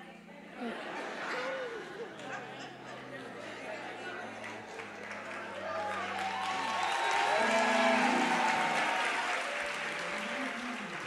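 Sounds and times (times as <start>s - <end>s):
congregation clapping: 4.1s - 11.0s.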